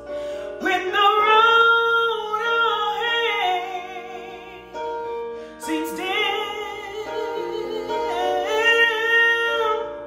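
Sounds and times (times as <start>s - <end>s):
woman singing: 0.0s - 5.0s, 5.6s - 10.0s
piano backing track: 0.0s - 10.0s.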